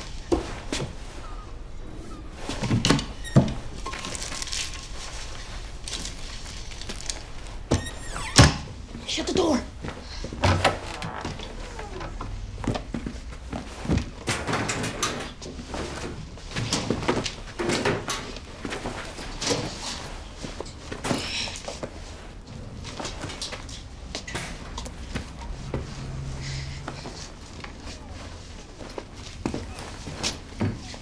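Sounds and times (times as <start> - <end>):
fabric rustling: 0.0 - 8.2, 8.8 - 14.3, 18.2 - 31.0.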